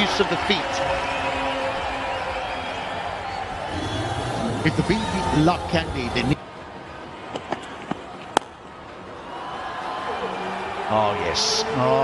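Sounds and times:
crowd noise: 0.0s - 12.0s
cricket bat striking ball: 7.3s - 8.6s.

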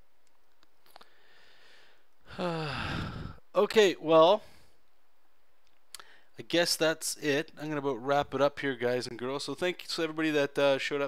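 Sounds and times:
man sighing: 1.0s - 3.5s.

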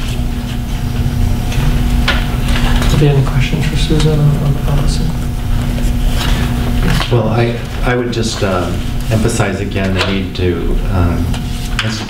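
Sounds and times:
low electrical hum: 0.0s - 12.0s
papers rustling: 2.3s - 10.4s
person speaking: 2.5s - 12.0s.

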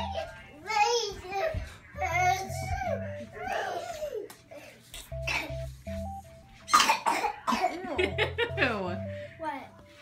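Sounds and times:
person coughing: 6.7s - 8.0s
music with bass line: 7.9s - 9.3s.

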